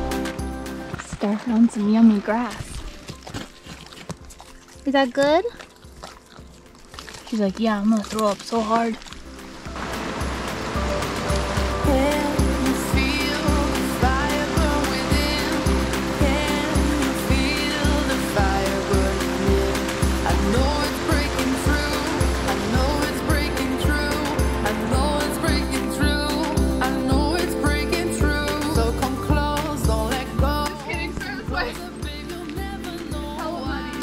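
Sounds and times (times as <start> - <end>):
background music with steady beat: 0.0 - 7.1, 9.2 - 34.0.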